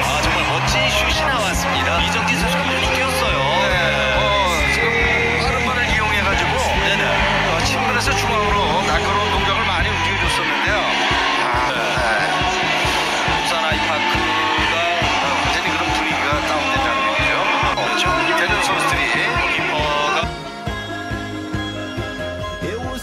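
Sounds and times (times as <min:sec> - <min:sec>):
voice over music: 0:00.0 - 0:20.7
music with steady beat: 0:00.0 - 0:23.0.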